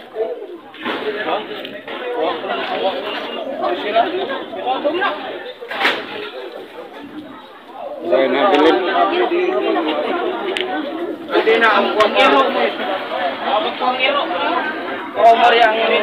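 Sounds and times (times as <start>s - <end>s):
indistinct chatter: 0.0s - 16.0s.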